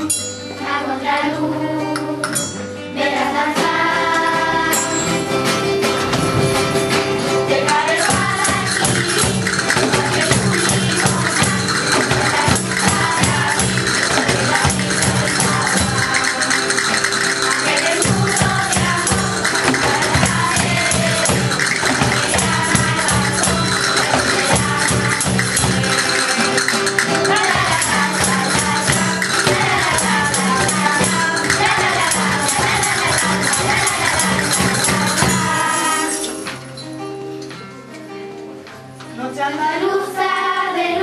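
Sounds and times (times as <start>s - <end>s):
hand percussion: 0.0s - 0.9s, 1.9s - 37.6s
instrumental accompaniment: 0.0s - 40.9s
children's choir singing: 0.6s - 36.7s, 39.2s - 41.0s.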